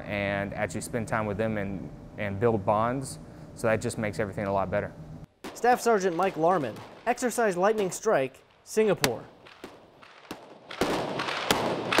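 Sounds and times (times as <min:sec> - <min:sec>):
echoing rifle fire: 0:05.4 - 0:07.9, 0:08.5 - 0:12.0.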